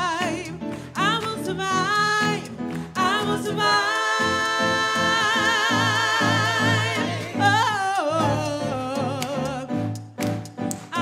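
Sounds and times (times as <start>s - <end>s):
gospel choir singing a cappella: 2.8s - 9.7s.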